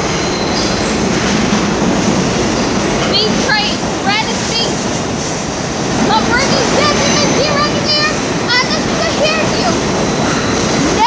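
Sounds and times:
subway train wheels rumbling: 0.0s - 11.0s.

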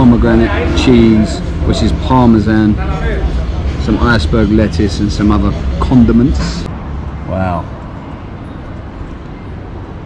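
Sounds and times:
city background rumble: 0.0s - 10.0s.

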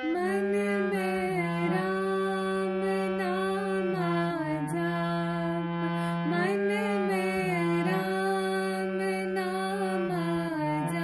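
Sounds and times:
harmonium melody: 0.0s - 11.0s
woman singing: 0.0s - 11.0s.

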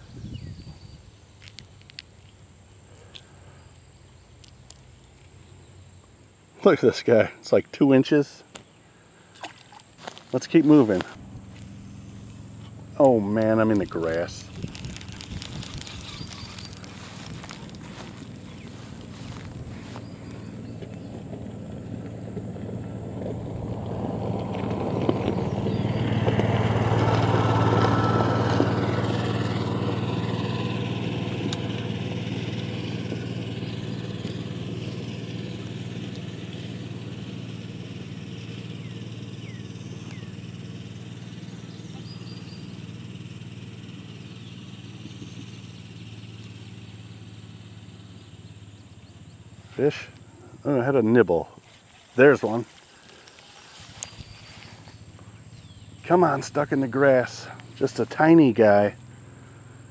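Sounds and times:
passing engine hum: 0.0s - 59.9s.

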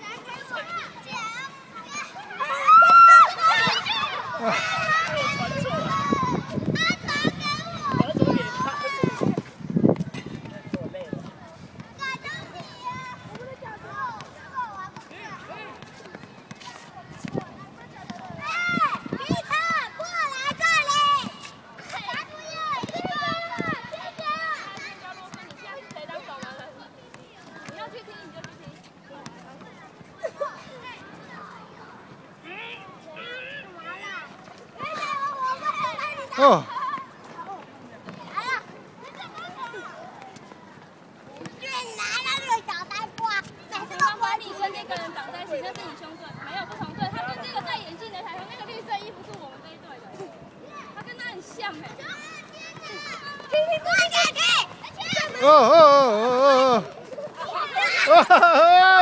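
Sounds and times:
children shouting: 0.0s - 9.4s, 18.0s - 26.4s, 32.5s - 37.4s, 50.6s - 59.0s
faint background chatter: 0.0s - 59.0s.

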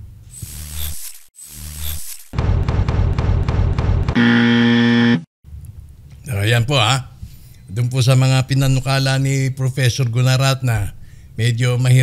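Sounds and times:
electronic buzzer: 0.3s - 2.4s, 4.2s - 5.3s.

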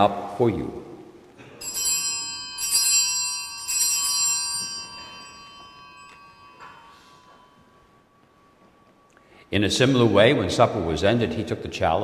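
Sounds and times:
altar bells ringing: 1.6s - 11.4s.

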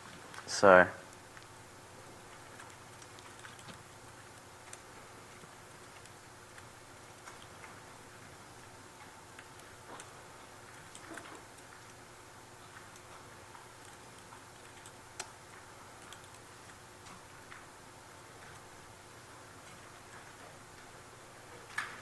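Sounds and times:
low room hum: 0.0s - 22.0s
computer keyboard clicks: 2.3s - 7.8s, 10.7s - 12.0s, 12.7s - 17.7s.

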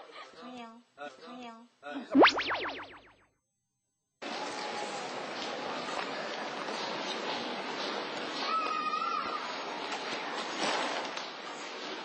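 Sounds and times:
high-pitched tone: 2.2s - 3.2s.

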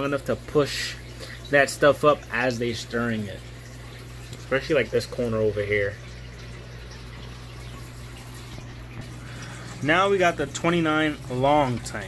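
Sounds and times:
aquarium water trickling: 0.0s - 12.0s
low steady hum: 0.0s - 12.0s.

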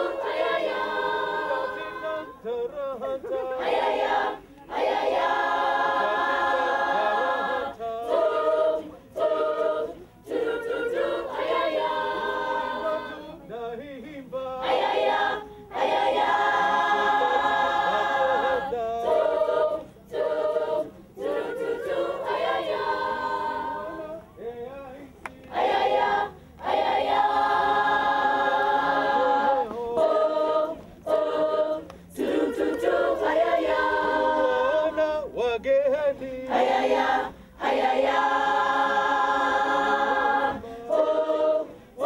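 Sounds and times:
girls choir singing a cappella: 0.0s - 42.0s.

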